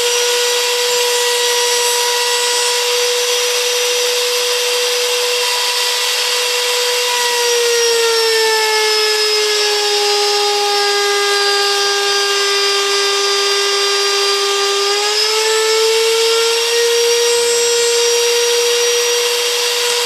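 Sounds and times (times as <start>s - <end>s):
router whining: 0.0s - 20.0s.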